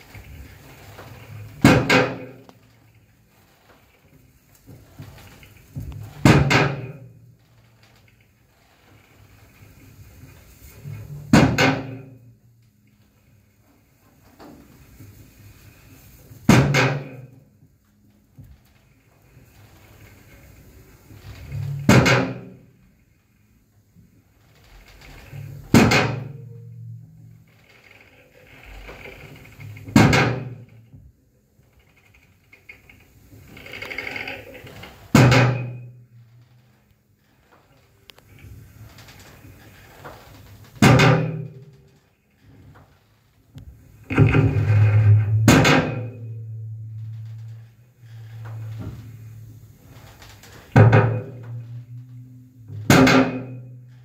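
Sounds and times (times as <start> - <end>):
rough electronic noise: 43.9 - 54.0
heavy amplified drum crash: 44.0 - 49.8, 50.7 - 54.0.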